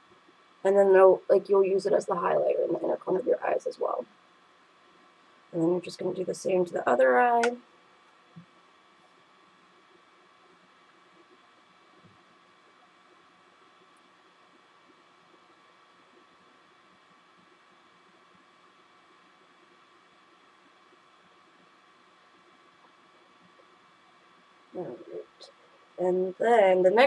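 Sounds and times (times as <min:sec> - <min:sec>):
faint steady hiss: 0:00.0 - 0:27.0
faint steady tones: 0:00.0 - 0:27.0.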